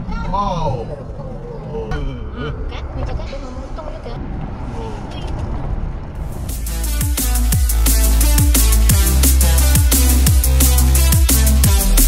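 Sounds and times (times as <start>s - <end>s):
car road and engine rumble: 0.0s - 8.4s.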